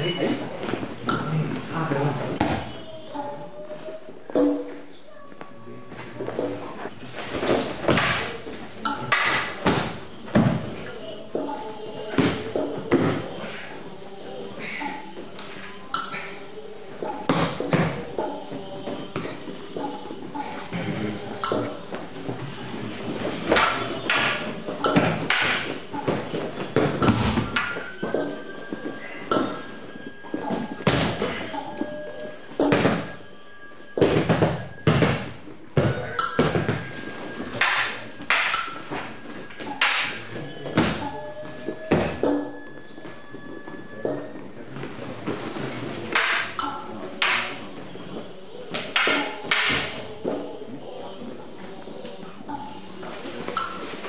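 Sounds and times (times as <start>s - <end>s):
wooden staffs knocking: 23.5s - 26.1s, 37.6s - 41.0s, 46.1s - 47.6s, 48.7s - 49.9s.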